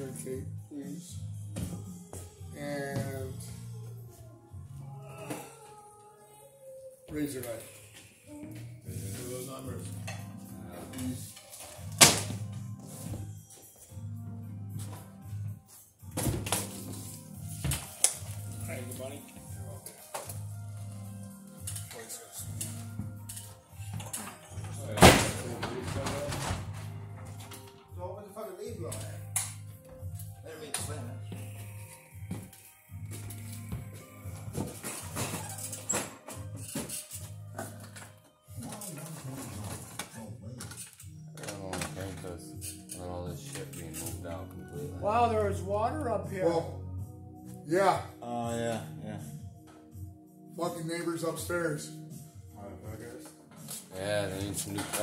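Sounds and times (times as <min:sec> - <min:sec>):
background music: 0:00.0 - 0:55.0.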